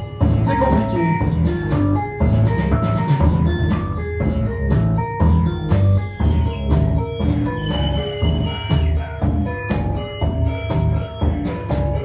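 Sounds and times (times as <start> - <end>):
instrumental hip-hop groove: 0.0 - 12.0.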